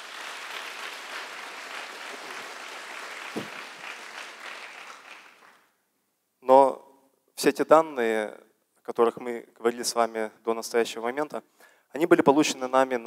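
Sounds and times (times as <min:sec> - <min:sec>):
audience applauding: 0:00.0 - 0:05.7
loud thump: 0:03.4 - 0:03.6.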